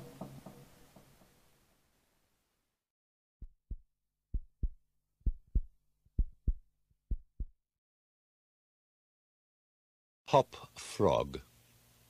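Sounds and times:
heartbeat thumps: 3.4s - 7.6s.

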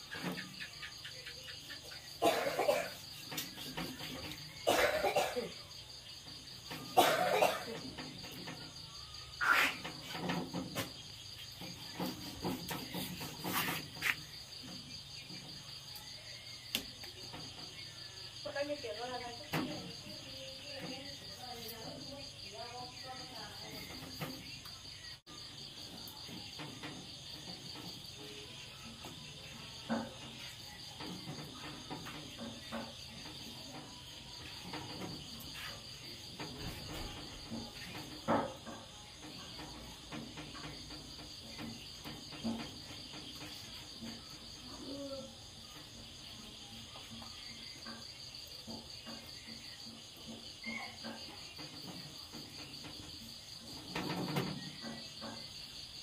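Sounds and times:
crickets chirring: 0.0s - 56.0s.

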